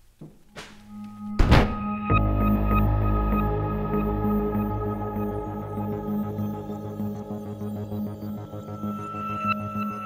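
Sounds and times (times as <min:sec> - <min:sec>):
film score music: 0:00.0 - 0:10.0
heavy thunk: 0:01.4 - 0:01.9.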